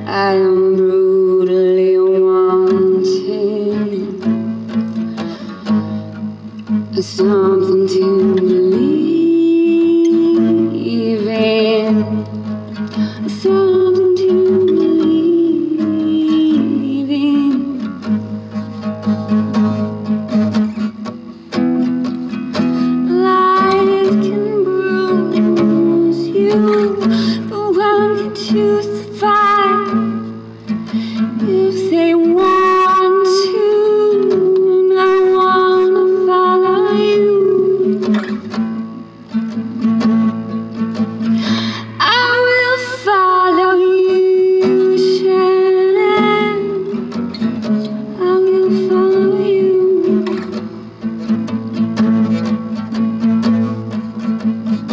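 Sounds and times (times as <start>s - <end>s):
acoustic guitar: 0.0s - 54.9s.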